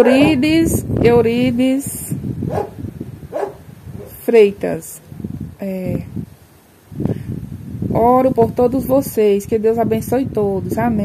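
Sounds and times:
low steady background rumble: 0.0 - 11.0.

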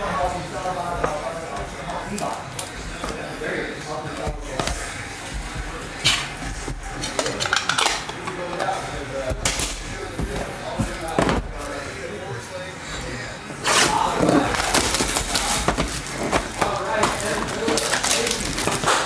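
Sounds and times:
cardboard rustling: 8.7 - 11.8, 13.6 - 19.0.

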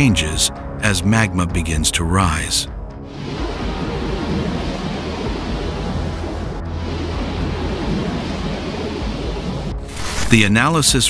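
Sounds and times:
steady rushing noise: 2.9 - 10.9.

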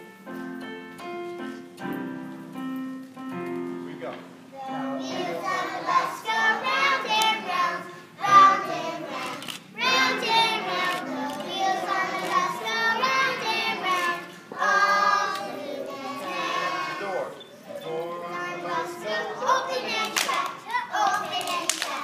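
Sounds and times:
children singing together: 4.6 - 22.0.

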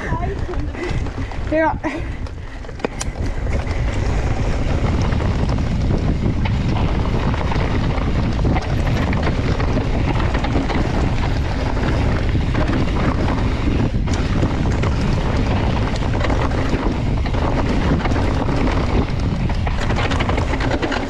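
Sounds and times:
tyres rattling on stony trail: 0.0 - 21.0
wind buffeting microphone: 0.0 - 21.0.

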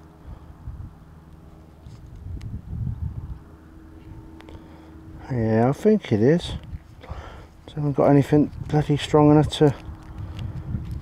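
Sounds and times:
faint steady hum: 0.0 - 11.0
wind and handling rumble on microphone: 0.0 - 11.0.

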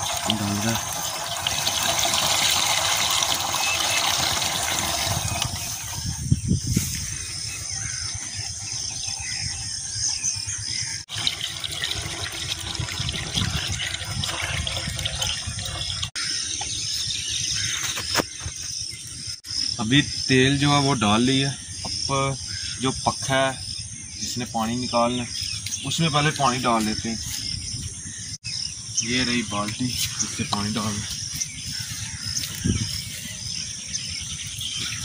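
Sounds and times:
fuel pouring into tank: 0.0 - 6.1, 11.1 - 16.2.

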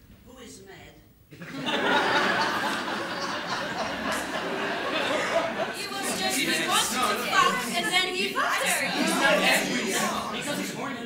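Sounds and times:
overlapping chatter of people: 1.9 - 11.0.

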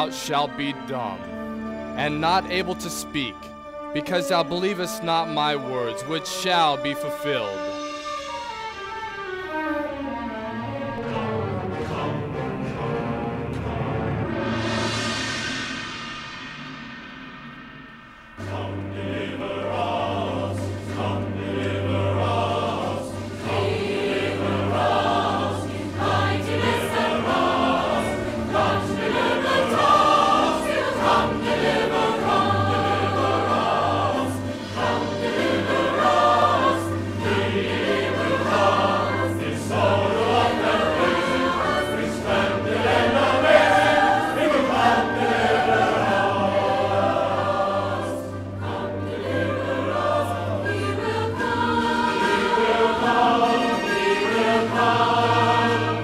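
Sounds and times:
large choir singing: 0.0 - 56.0.

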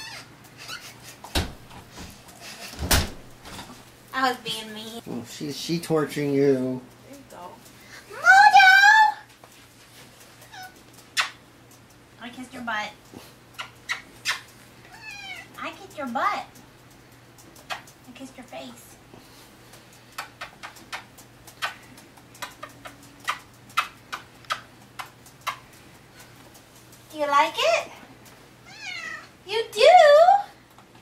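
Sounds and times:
kiss smacks: 11.0 - 11.8, 13.6 - 14.6, 17.5 - 18.0, 20.1 - 25.6
loud kiss smack: 11.2 - 11.4, 20.2 - 21.8.

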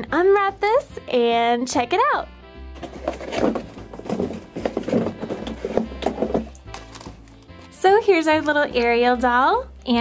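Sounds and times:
background music: 0.0 - 10.0
plastic wrap and cardboard crinkling: 2.8 - 7.8.

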